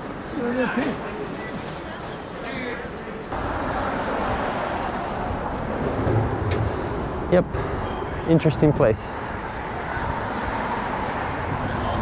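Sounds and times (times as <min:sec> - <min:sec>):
rush of road traffic: 0:00.0 - 0:12.0
deep traffic rumble: 0:03.0 - 0:12.0.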